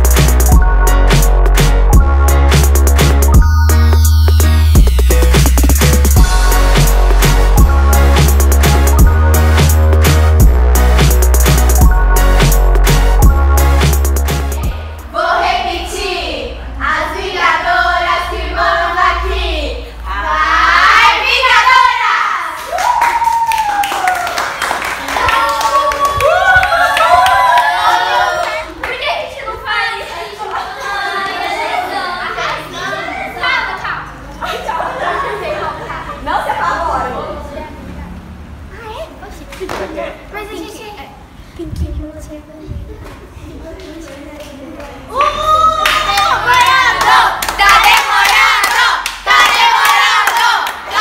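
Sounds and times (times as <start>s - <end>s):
girls calling out: 45.0s - 49.0s.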